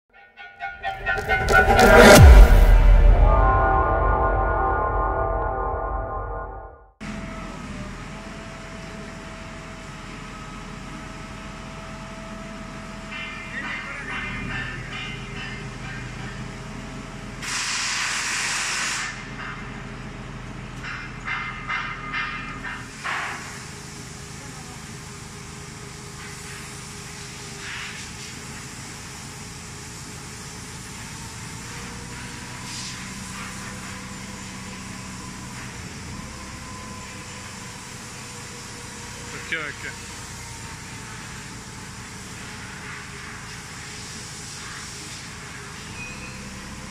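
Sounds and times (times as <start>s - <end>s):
crane engine running: 0.8s - 17.4s, 19.3s - 27.7s, 28.4s - 46.9s
loud hiss: 17.4s - 19.3s.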